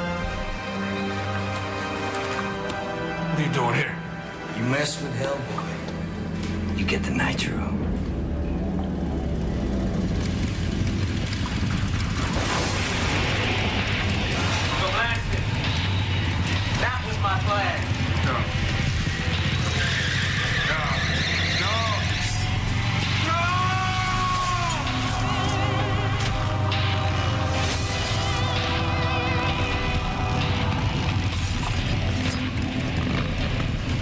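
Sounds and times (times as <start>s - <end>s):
music: 0.0s - 34.0s
motorcycle engine high revs: 17.8s - 23.2s
voices: 19.4s - 27.4s.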